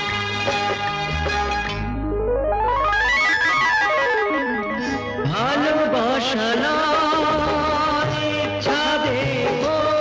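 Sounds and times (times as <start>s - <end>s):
held bass note: 1.2s - 5.6s
sliding gliding notes: 1.4s - 6.1s
keyboard playing scale runs: 1.8s - 6.0s.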